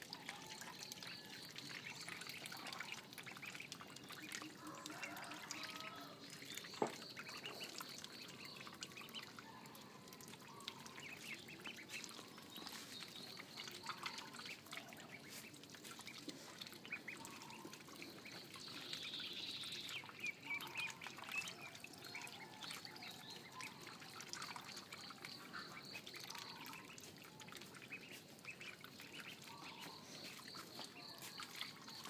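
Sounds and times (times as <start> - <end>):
ducklings peeping: 0.2 - 32.0.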